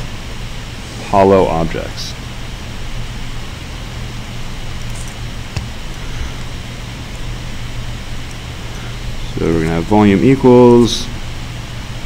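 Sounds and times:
low hum with hiss: 0.0s - 12.0s.

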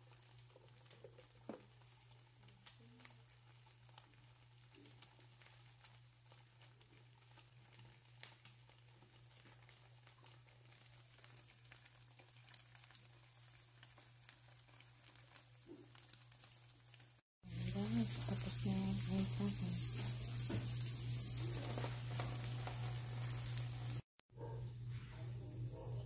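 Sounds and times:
food frying in oil: 0.0s - 24.2s.

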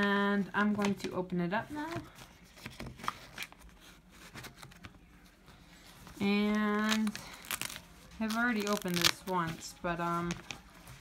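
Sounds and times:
plastic pouch crinkling: 6.5s - 9.6s.

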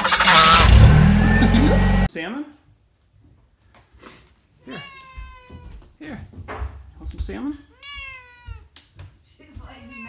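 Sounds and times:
cat meowing: 4.6s - 5.8s, 7.7s - 8.7s, 9.7s - 10.0s.

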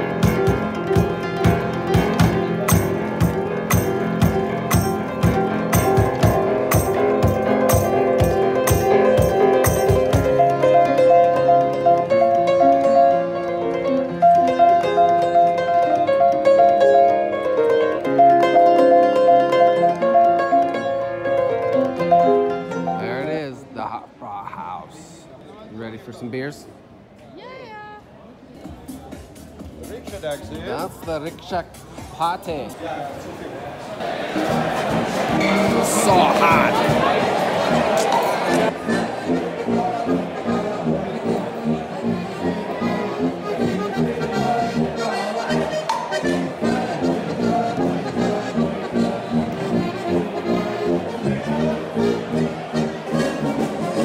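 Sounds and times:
drum kit: 0.0s - 10.8s
tuba: 0.0s - 12.7s, 34.1s - 54.0s
band playing lively tune: 0.0s - 23.1s, 34.0s - 54.0s
burst of voices: 35.4s - 38.7s.

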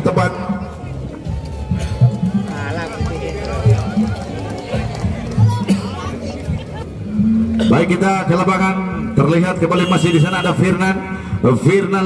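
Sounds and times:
crowd voices talking: 0.0s - 12.0s.

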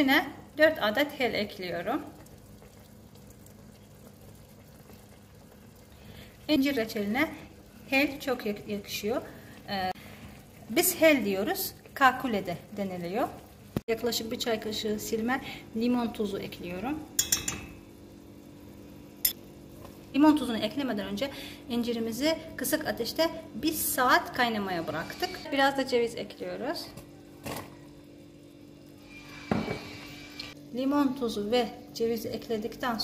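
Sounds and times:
jam bubbling in a pot: 0.0s - 33.0s
spoon clinking against pot: 17.2s - 17.8s.

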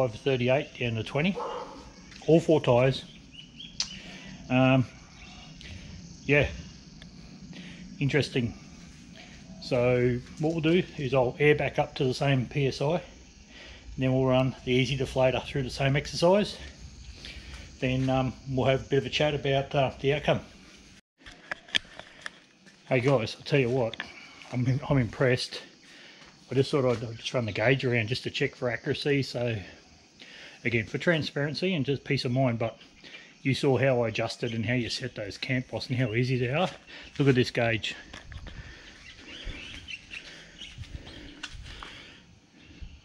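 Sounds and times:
man speaking: 0.0s - 1.6s, 2.2s - 3.1s, 4.4s - 5.0s, 6.2s - 6.7s, 8.0s - 8.6s, 9.6s - 13.2s, 14.0s - 16.7s, 17.8s - 20.5s, 22.9s - 25.7s, 26.5s - 29.8s, 30.6s - 32.8s, 33.4s - 38.2s
birds chirping: 0.0s - 20.9s, 23.1s - 43.0s
outdoor background noise: 0.0s - 43.0s.

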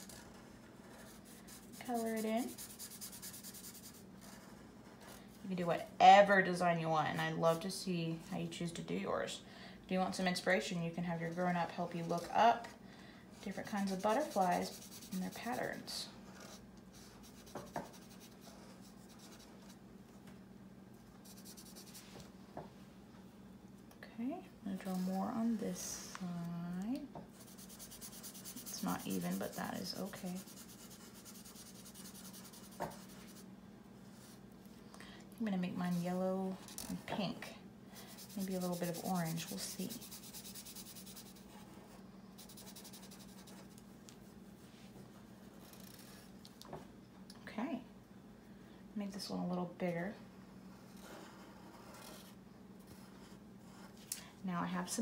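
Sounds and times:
marker scratching on paper: 0.0s - 5.2s, 13.5s - 19.8s, 24.8s - 25.6s, 27.4s - 33.4s, 38.0s - 41.7s, 42.4s - 43.8s
faint low hum: 0.0s - 55.0s.

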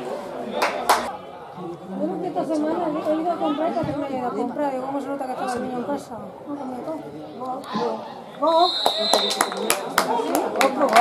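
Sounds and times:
indistinct chatter of spectators: 0.0s - 11.0s.

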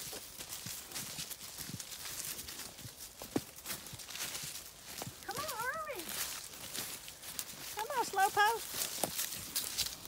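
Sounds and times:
footsteps crunching through dry leaves: 0.0s - 10.0s
pig hooves crunching on leaves: 0.0s - 10.0s.

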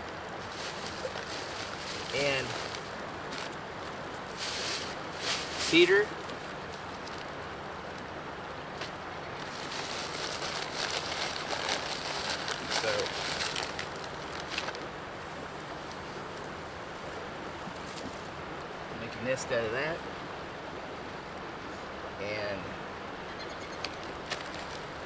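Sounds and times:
plastic bag crinkling: 0.4s - 5.8s, 9.4s - 14.8s, 24.3s - 24.9s.

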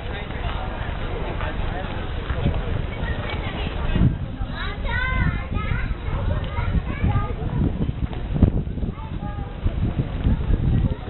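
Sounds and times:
passers-by talking: 0.0s - 11.0s
steady low rumble: 0.0s - 11.0s.

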